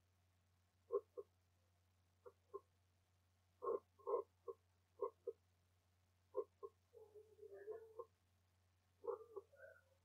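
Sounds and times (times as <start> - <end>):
faint low hum: 0.0 - 10.0
croaking animal calls: 0.9 - 1.3, 3.6 - 5.4, 6.3 - 8.2, 9.0 - 9.9.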